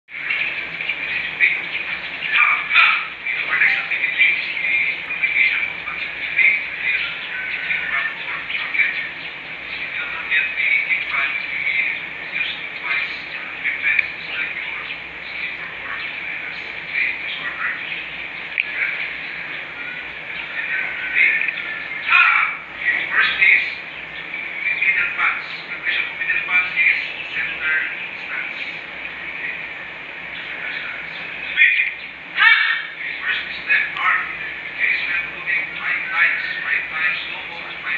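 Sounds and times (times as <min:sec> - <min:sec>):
birds chirping and squawking: 0:00.1 - 0:37.9.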